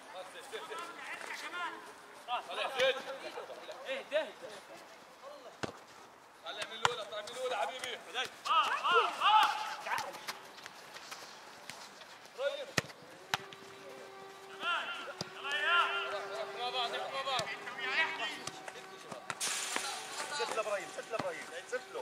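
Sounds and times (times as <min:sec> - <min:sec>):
players shouting: 0:08.4 - 0:10.3, 0:13.1 - 0:19.0.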